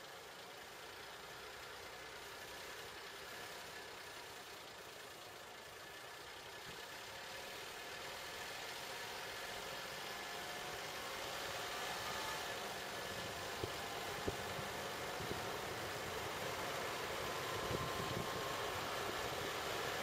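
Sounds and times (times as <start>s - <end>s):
car engine: 0.0s - 20.0s
road noise: 0.2s - 20.0s.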